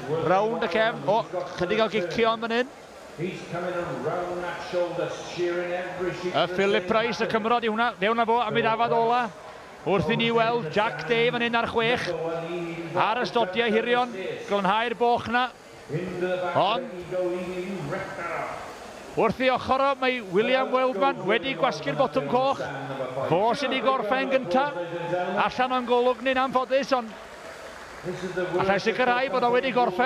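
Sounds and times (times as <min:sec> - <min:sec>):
man commentating drawn-out syllable: 0:00.0 - 0:09.3, 0:09.9 - 0:18.6
man talking: 0:00.0 - 0:27.2, 0:28.0 - 0:30.0.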